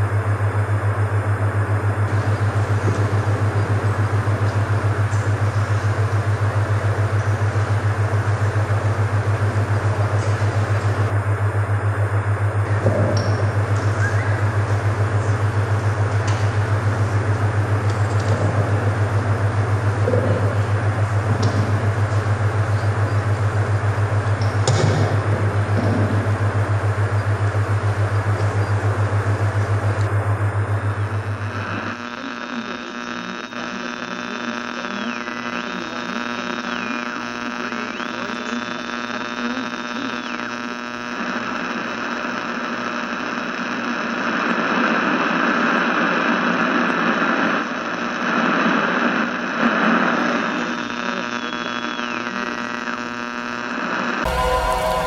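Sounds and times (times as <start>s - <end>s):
pulsing low electronic hum: 0.0s - 45.2s, 54.2s - 55.0s
electronic drone over hiss: 0.0s - 55.0s.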